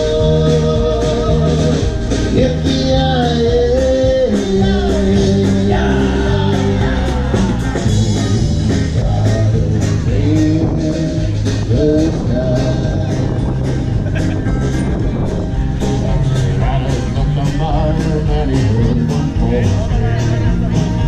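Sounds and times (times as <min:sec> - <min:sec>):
bass guitar: 0:00.0 - 0:21.0
electric guitar: 0:00.0 - 0:21.0
singer holding notes: 0:00.0 - 0:21.0
steady drum beat: 0:00.0 - 0:21.0.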